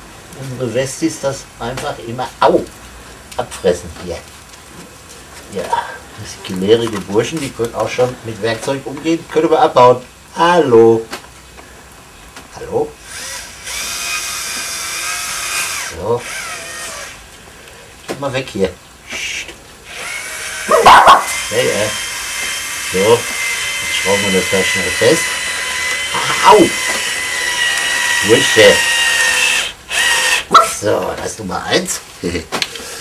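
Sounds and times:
cordless drill whining: 13.0s - 17.2s, 19.9s - 30.6s.

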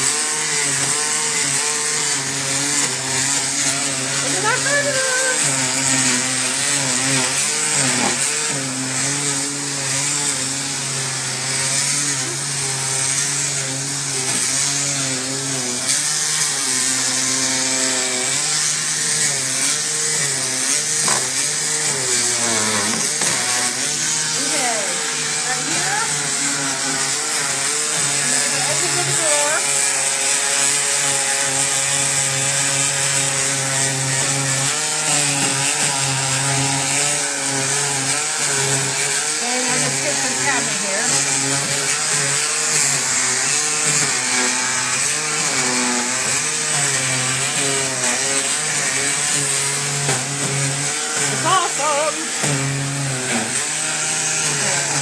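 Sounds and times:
electric sander on wood: 0.0s - 55.0s.

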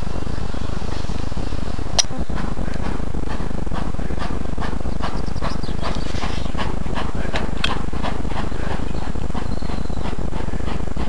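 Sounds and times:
steady low rumble: 0.0s - 11.0s
steam locomotive chuffing: 0.0s - 11.0s.

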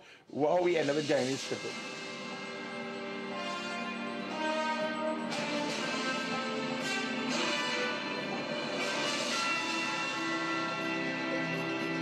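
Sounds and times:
bell-like chiming tones: 1.0s - 12.0s.

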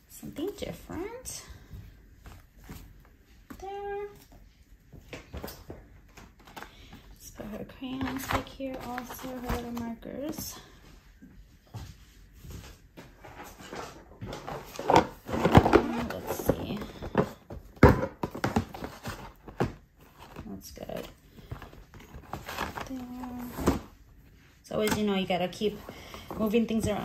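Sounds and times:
cardboard and plastic rustling: 0.3s - 10.9s, 11.7s - 27.0s.

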